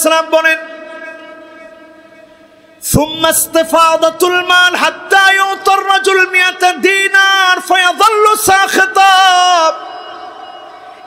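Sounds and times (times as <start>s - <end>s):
man chanting through loudspeakers: 0.0s - 10.0s.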